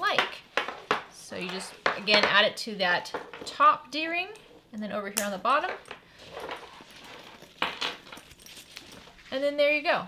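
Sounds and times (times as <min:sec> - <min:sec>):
metal hooks clinking: 0:05.7 - 0:09.2.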